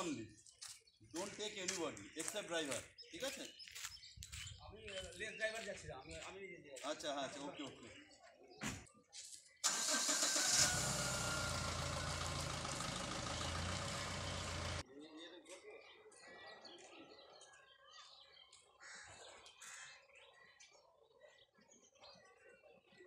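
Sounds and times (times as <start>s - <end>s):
vehicle engine starting and running: 9.6s - 14.8s.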